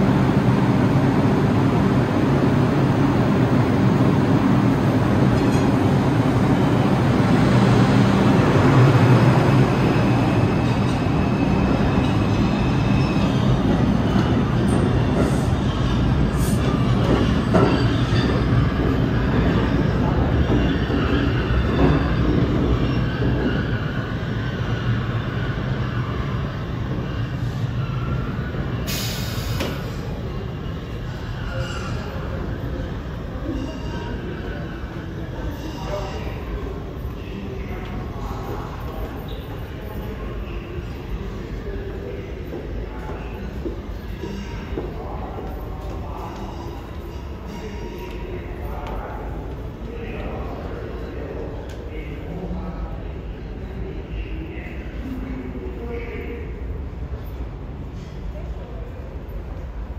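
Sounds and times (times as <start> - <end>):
train wheels rumbling on rails: 0.0 - 35.5.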